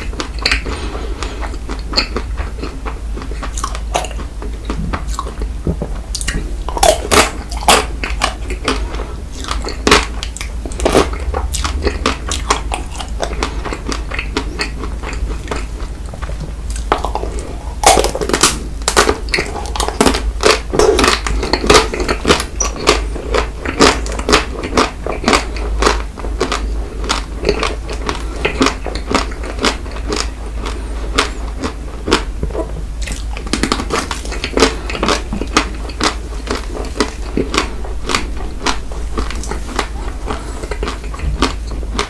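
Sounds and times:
biting and chewing ice cream: 0.0 - 42.0.

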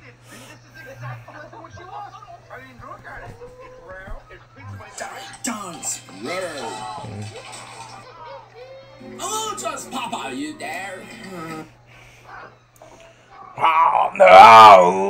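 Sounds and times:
cartoon background music: 8.9 - 11.6.

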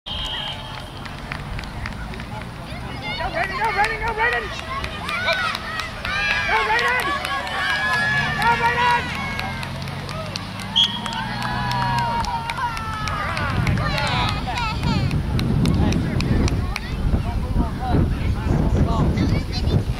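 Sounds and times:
spectators shouting and cheering: 0.1 - 17.1
low rumbling outdoor noise: 0.1 - 19.9
wind rumbling on microphone: 12.0 - 19.9.

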